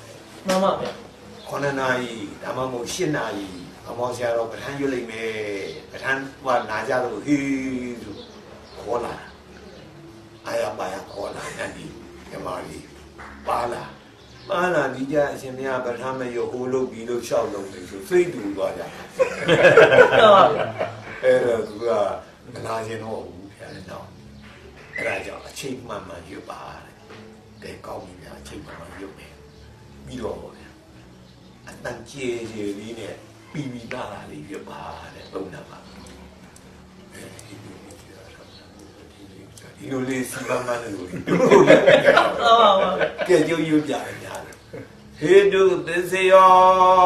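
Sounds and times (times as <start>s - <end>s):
man talking: 10.5s - 24.1s, 37.2s - 44.6s
man laughing loudly: 19.2s - 21.2s, 41.2s - 43.5s.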